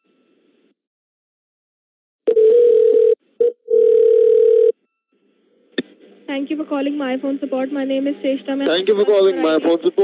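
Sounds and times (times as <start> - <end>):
telephone line tone: 2.3 - 5.0.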